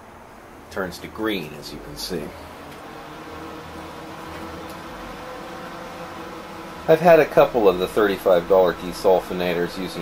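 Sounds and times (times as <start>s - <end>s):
faint steady tones: 0.0s - 10.0s
machine hum: 0.0s - 10.0s.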